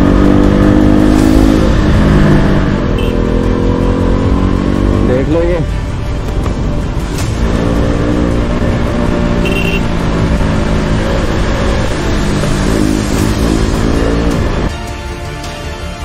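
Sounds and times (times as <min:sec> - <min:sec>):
motorcycle engine running: 0:00.0 - 0:14.7
wind noise: 0:05.8 - 0:09.4.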